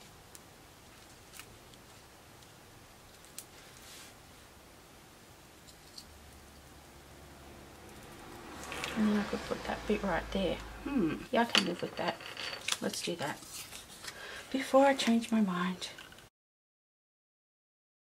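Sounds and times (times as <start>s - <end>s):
room hum: 0.0s - 16.3s.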